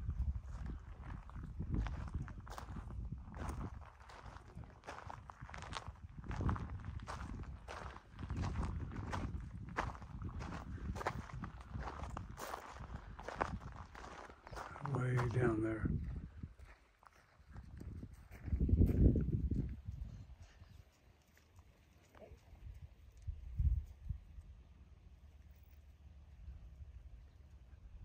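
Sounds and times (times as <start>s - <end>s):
footsteps on gravel: 0.0s - 19.8s.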